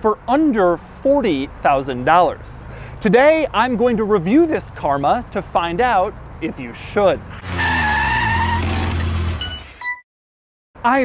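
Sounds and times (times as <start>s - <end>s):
tyre screech: 7.3s - 9.9s.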